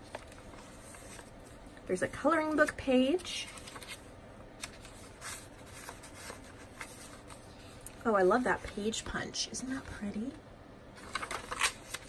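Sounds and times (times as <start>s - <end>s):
paper pages rustling: 0.0s - 1.6s, 2.6s - 7.8s, 11.0s - 12.0s.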